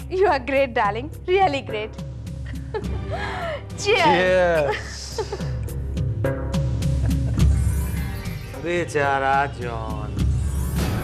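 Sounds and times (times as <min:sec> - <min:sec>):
person laughing: 0:04.2 - 0:05.6, 0:06.8 - 0:07.6.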